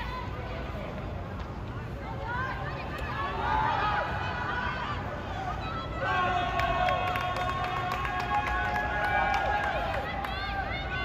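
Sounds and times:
players and spectators shouting: 2.1 - 11.0.

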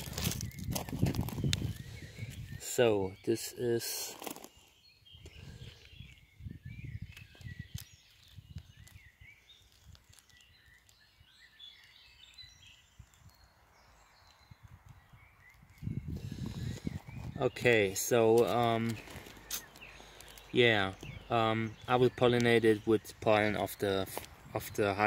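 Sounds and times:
distant birds chirping: 0.0 - 25.0.

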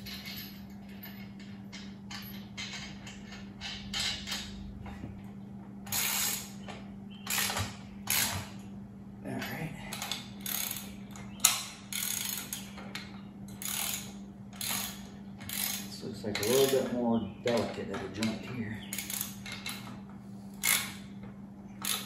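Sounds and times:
ratchet wrench clicking: 10.0 - 12.7, 13.5 - 16.9, 18.9 - 19.8, 20.6 - 21.0, 21.8 - 22.0.

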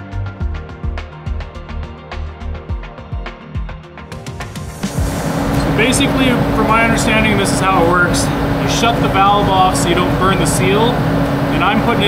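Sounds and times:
heater fan droning: 4.2 - 12.0
constant hum: 4.8 - 12.0
man talking: 5.6 - 12.0.

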